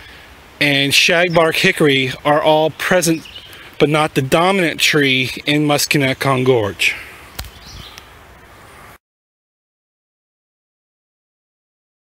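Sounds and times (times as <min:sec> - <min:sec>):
faint steady hiss: 0:00.0 - 0:09.0.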